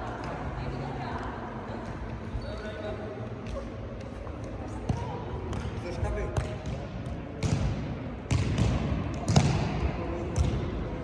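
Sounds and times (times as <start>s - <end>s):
voices of players and spectators: 0.0s - 11.0s
ball kicked and bouncing: 6.3s - 10.7s.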